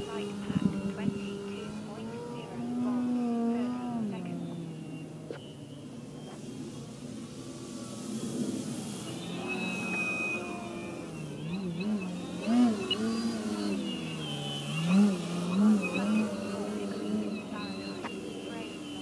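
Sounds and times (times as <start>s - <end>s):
model plane motor droning: 0.0s - 19.0s.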